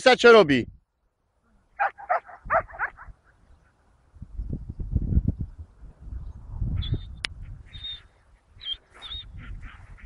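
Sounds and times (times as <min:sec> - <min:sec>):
dog yelping: 0:01.8 - 0:03.1.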